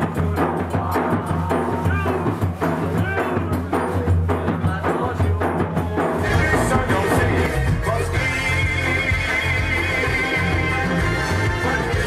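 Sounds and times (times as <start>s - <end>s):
frame drums pulsing: 0.0s - 12.0s.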